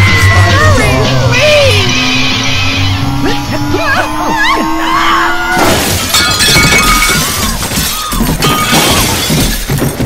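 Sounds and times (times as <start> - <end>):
background music: 0.0 - 5.4
plates and glassware shattering: 5.6 - 10.0.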